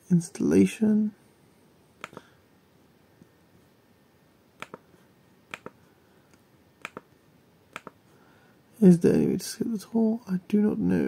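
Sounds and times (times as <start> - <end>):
computer mouse button clicking: 2.0 - 2.3, 4.6 - 4.8, 5.5 - 5.8, 6.8 - 7.1, 7.7 - 8.0.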